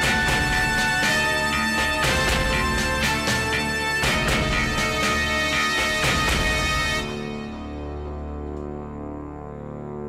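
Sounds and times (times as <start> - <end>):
background music score: 0.0 - 10.0.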